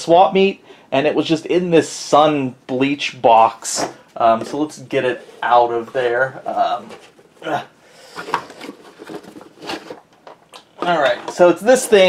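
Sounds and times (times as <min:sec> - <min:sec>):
cardboard box rustling and scraping: 0:08.0 - 0:10.0.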